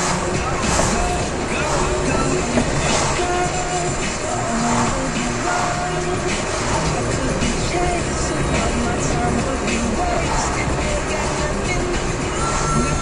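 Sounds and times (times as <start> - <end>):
car engine and road noise: 0.0 - 13.0
music on car radio: 0.0 - 13.0.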